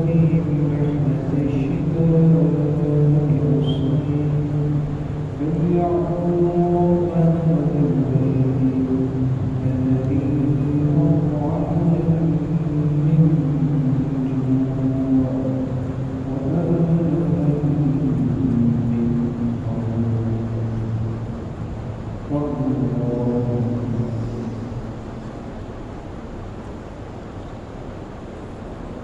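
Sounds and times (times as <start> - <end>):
man chanting: 0.0 - 21.3, 22.2 - 24.9.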